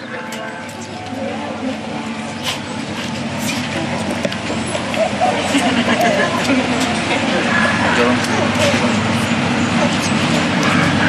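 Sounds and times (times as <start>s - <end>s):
faint chatter of people: 0.0s - 11.0s
low traffic hum: 0.0s - 11.0s.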